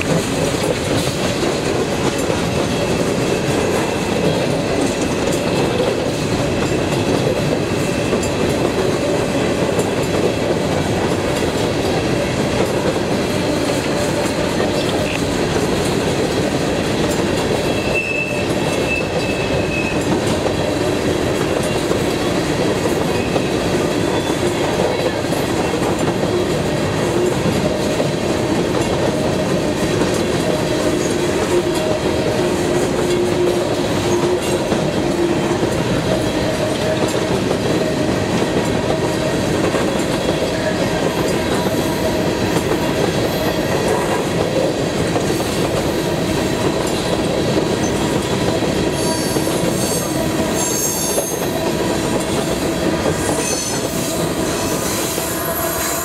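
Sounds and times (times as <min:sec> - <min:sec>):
freight train rolling past: 0:00.0 - 0:56.0
high-pitched wheel squeals: 0:49.0 - 0:51.6, 0:53.3 - 0:54.1.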